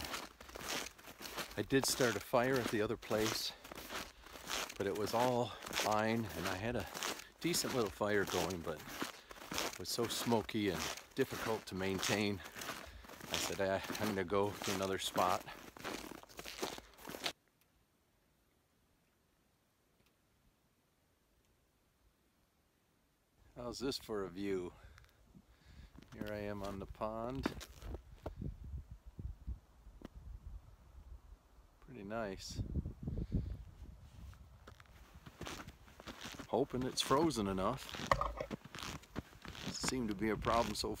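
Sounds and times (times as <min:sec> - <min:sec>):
footsteps crunching in snow: 0:00.0 - 0:17.4, 0:25.9 - 0:28.4, 0:34.0 - 0:41.0
handling noise: 0:37.9 - 0:39.0.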